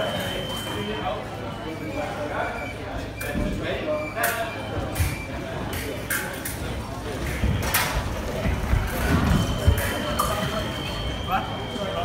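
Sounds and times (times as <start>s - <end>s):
voices talking: 0.0s - 12.0s.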